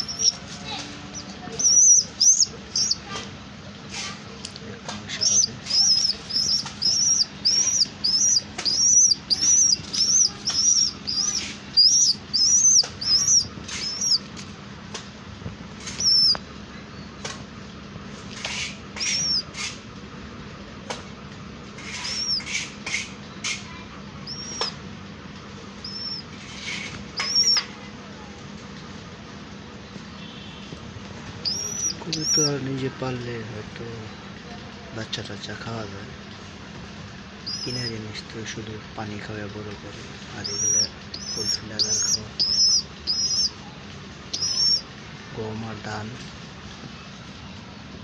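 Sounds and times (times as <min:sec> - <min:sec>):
pigeon chick squeaky peeps: 0:00.0 - 0:03.3, 0:03.9 - 0:14.5, 0:15.8 - 0:17.3, 0:18.3 - 0:19.8, 0:21.7 - 0:24.9, 0:25.8 - 0:27.9, 0:31.2 - 0:32.8, 0:37.3 - 0:38.6, 0:39.7 - 0:45.0.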